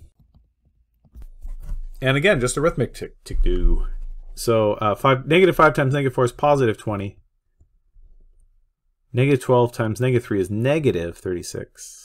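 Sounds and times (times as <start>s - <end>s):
stylus scratching on screen: 1.1s - 2.7s.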